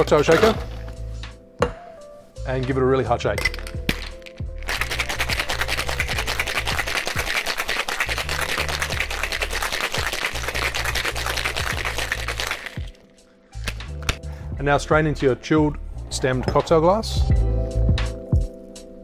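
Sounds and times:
background music with bass: 0.0 - 7.4, 8.0 - 19.0
ice cubes rattling in shaker: 3.4 - 12.9.

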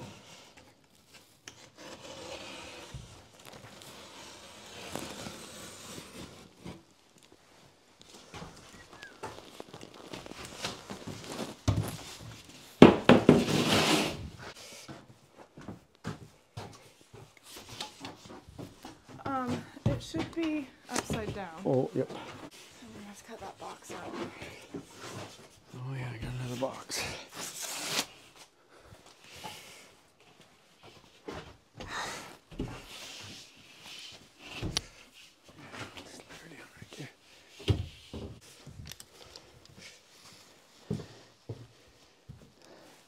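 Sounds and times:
drywall sheets scraping: 1.6 - 7.0, 8.1 - 14.6.

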